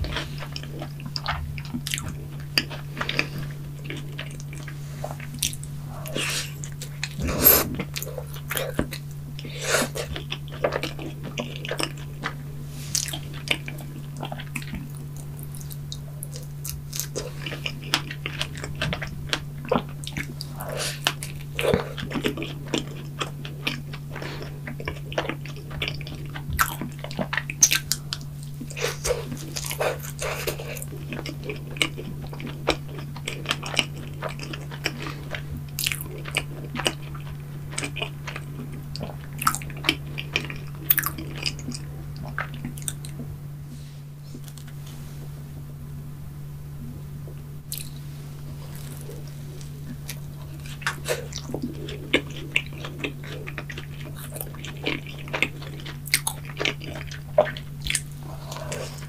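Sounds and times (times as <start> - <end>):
biting and chewing: 0.0 - 43.4, 47.7 - 59.0
steady low hum: 0.0 - 59.0.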